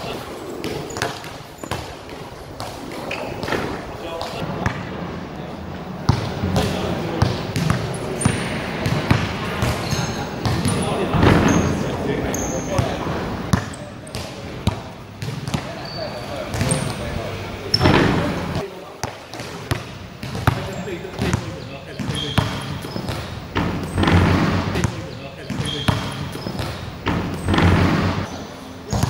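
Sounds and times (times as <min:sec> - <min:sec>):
basketball bouncing on hard court: 0:00.6 - 0:03.8, 0:04.6 - 0:04.9, 0:06.1 - 0:15.7, 0:17.7 - 0:28.3.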